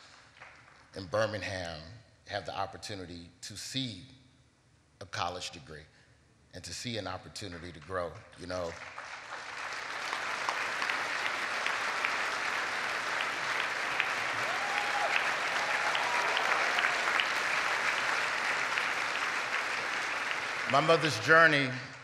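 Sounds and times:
audience applauding: 8.4 - 22.0.

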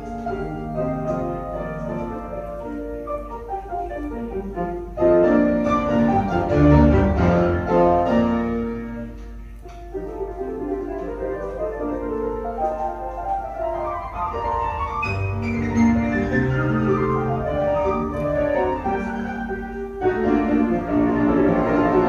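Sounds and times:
classical piano with strings: 0.0 - 22.0.

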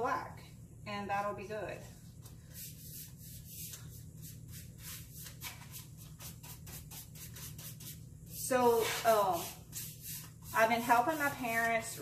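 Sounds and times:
paintbrush scratching on wood: 2.6 - 12.0.

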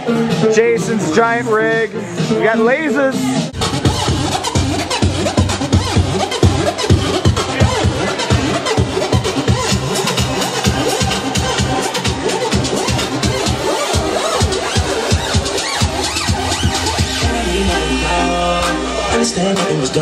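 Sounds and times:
steady kick drum beat: 0.0 - 19.9
electronic dance music: 0.0 - 20.0
held low bass note: 15.9 - 19.3.

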